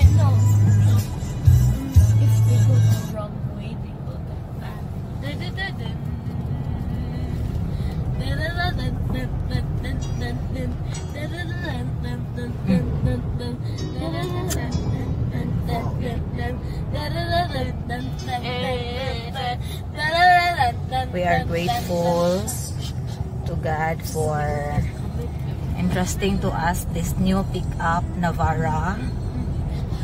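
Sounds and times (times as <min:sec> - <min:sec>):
music: 0:00.0 - 0:03.2, 0:13.5 - 0:16.5
road and engine rumble: 0:00.0 - 0:30.0
voices: 0:17.2 - 0:29.1.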